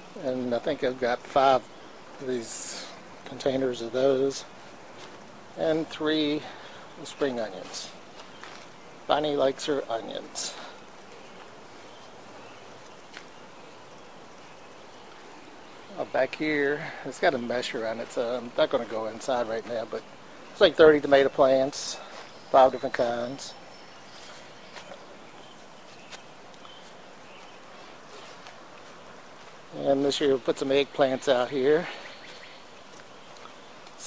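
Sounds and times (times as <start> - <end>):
outdoor background hiss: 0.0 - 34.0
faint bird chirps: 20.0 - 34.0.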